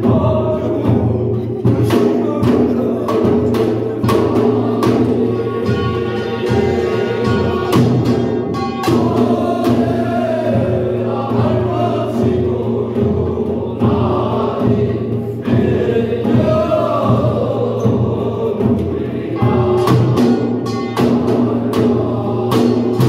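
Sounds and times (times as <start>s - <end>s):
ritual chant singing: 0.0s - 23.0s
sharp percussion strikes: 0.0s - 23.0s
steady accompaniment: 0.0s - 23.0s.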